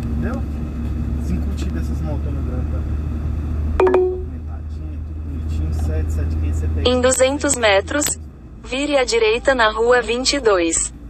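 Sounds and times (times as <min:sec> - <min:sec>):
car engine and road noise: 0:00.0 - 0:11.0
short steady tone: 0:03.8 - 0:04.4.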